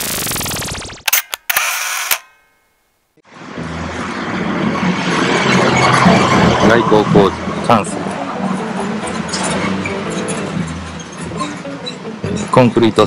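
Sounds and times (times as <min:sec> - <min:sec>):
sharp clicks: 0:00.0 - 0:02.4.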